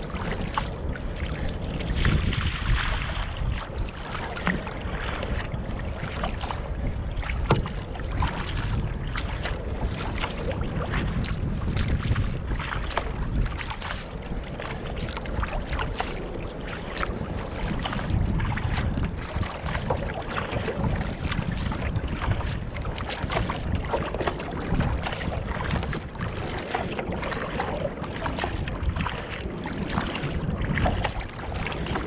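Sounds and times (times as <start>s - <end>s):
water splashing along a boat bow: 0.0s - 32.0s
wind rumbling on microphone: 0.0s - 32.0s.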